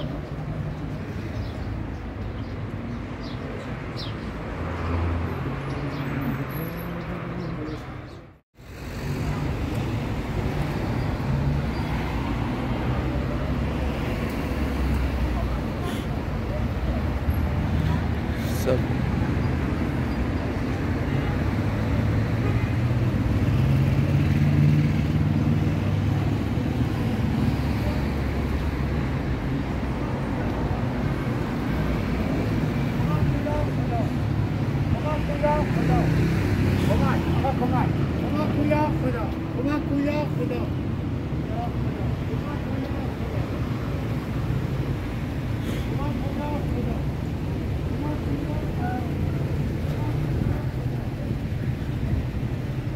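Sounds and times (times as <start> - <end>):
rumble of cars on road: 0.0 - 52.9
people talking nearby: 14.6 - 22.8, 29.4 - 52.8.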